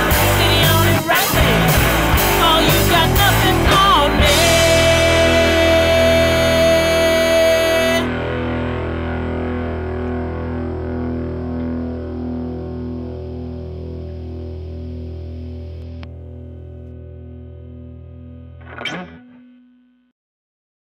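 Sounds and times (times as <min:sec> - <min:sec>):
rock band playing: 0:00.0 - 0:19.5
distorted electric guitar chord: 0:00.0 - 0:20.1.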